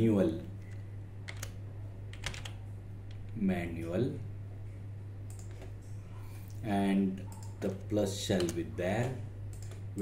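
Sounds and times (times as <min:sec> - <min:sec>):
computer keyboard keystrokes: 0:00.7 - 0:03.2, 0:05.3 - 0:05.7, 0:08.4 - 0:09.8.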